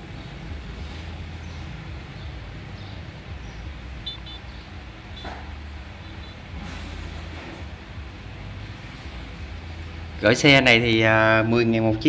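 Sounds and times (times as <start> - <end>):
road and traffic noise: 0.0 - 12.0.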